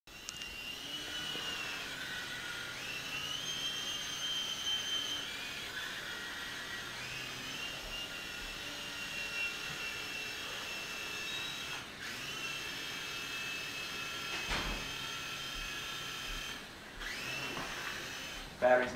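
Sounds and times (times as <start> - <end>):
small helicopter rotors whining: 0.1 - 18.9.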